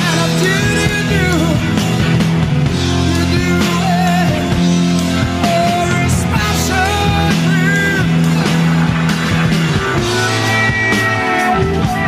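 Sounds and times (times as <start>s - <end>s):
progressive rock band playing: 0.0s - 12.0s.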